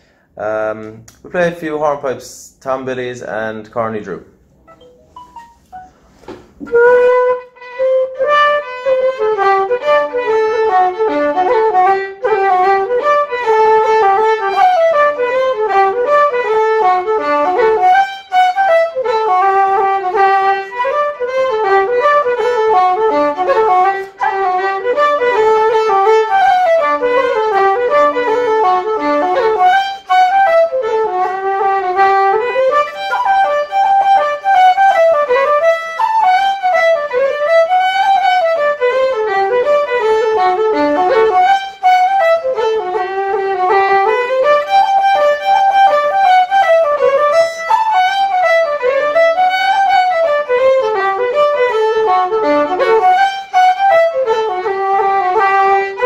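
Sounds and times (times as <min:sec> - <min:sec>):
fiddle and wooden flute hornpipe: 0:06.6 - 0:56.0.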